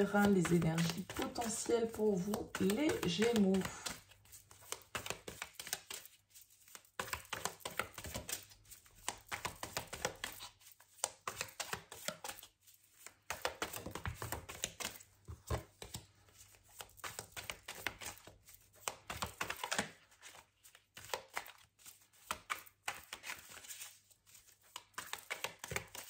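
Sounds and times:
cards being shuffled: 0.0s - 26.0s.

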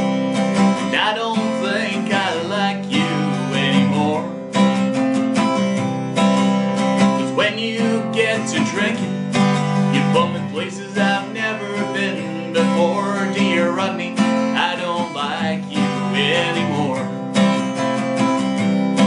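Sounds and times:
acoustic guitar strumming chords: 0.0s - 19.0s.

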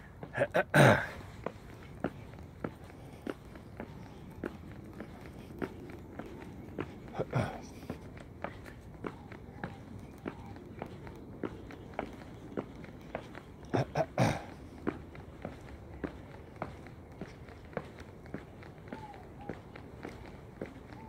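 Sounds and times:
faint steady background noise: 0.0s - 21.0s
footsteps on concrete: 0.0s - 21.0s.

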